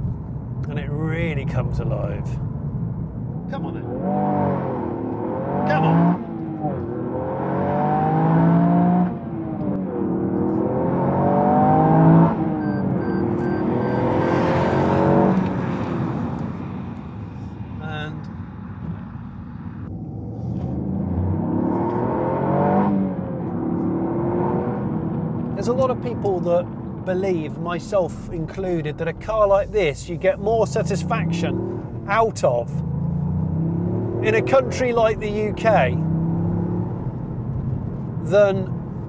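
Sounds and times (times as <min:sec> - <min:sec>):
car engine accelerating through gears: 0:02.7 - 0:17.6, 0:19.8 - 0:28.4, 0:30.2 - 0:39.0.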